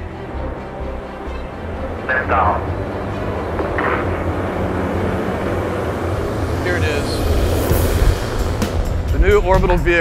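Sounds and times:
deep rocket engine rumble: 0.0 - 10.0.

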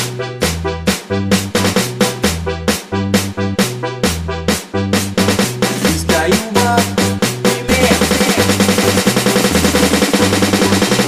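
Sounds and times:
synth bass line: 0.0 - 11.0
fast drum roll: 5.1 - 11.0.

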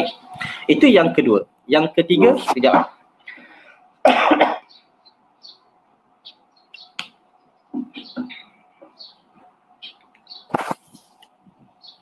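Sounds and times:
small birds chirping: 0.0 - 4.0, 4.6 - 12.0.

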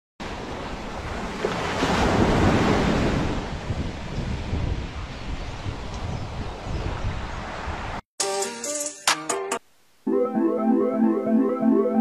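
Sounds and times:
ocean surf on sandy beach: 0.2 - 5.8
wind buffeting microphone: 0.3 - 8.0.

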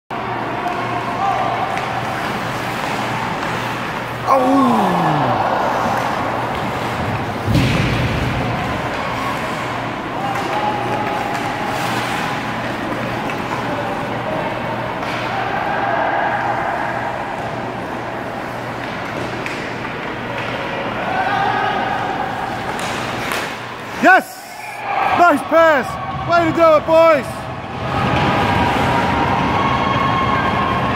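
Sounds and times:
crowd noise: 0.1 - 30.9.

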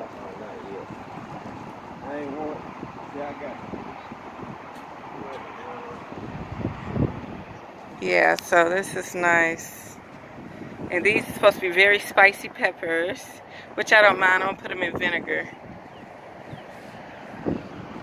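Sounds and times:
wind on microphone: 0.0 - 18.0
faint voices: 5.1 - 6.2.

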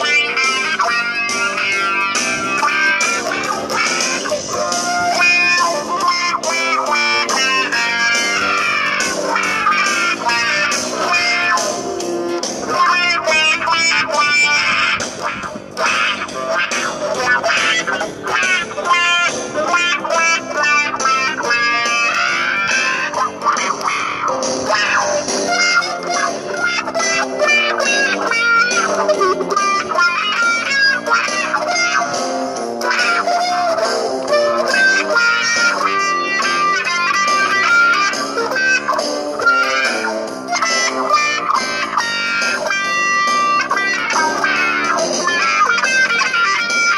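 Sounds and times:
electric guitar blues shuffle: 0.0 - 46.9.

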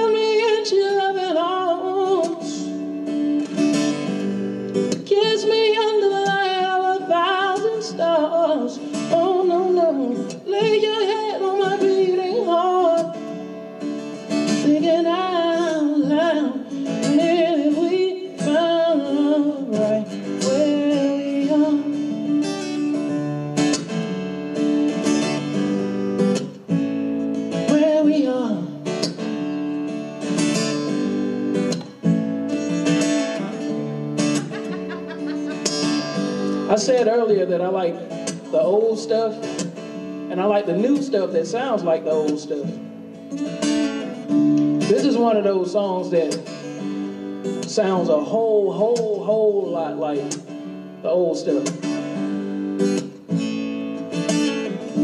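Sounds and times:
man singing: 0.0 - 2.9, 4.9 - 13.4, 14.4 - 22.8, 27.6 - 29.1, 34.4 - 42.8, 44.8 - 47.0, 47.6 - 52.0
strummed acoustic guitar: 0.0 - 55.0.

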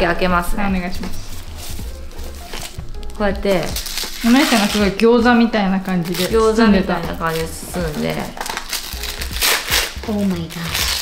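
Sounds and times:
paper crinkling and rustling: 1.0 - 2.8, 3.5 - 11.0.

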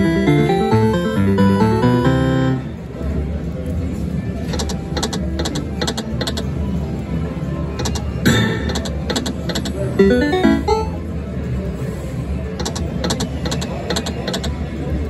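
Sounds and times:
slot machine reels spinning: 0.0 - 2.6, 8.8 - 11.0
slot machine win jingle: 0.0 - 2.8, 10.0 - 11.2.

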